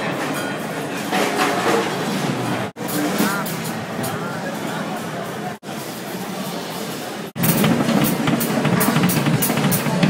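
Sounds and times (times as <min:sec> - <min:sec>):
many drum kits playing: 0:07.4 - 0:10.0.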